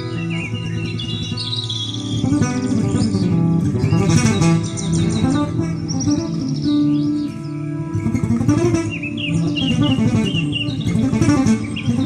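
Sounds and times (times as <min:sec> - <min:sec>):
bird chirping: 0:00.0 - 0:12.0
fingerpicked acoustic guitar: 0:00.0 - 0:12.0.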